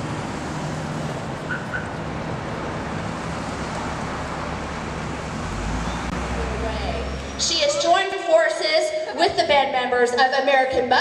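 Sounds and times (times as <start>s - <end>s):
passing cars: 0.0s - 9.8s.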